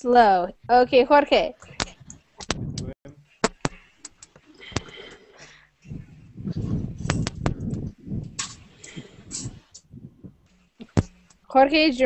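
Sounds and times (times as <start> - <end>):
muffled indistinct noise: 1.5 - 5.2.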